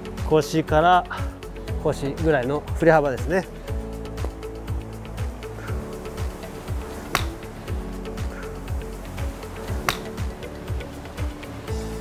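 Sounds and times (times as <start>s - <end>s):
background music with beat: 0.0s - 12.0s
golf club striking ball: 6.7s - 7.7s, 9.5s - 10.5s.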